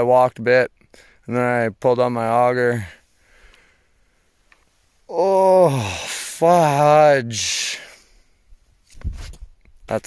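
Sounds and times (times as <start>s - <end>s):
faint soft hiss: 0.5s - 5.2s.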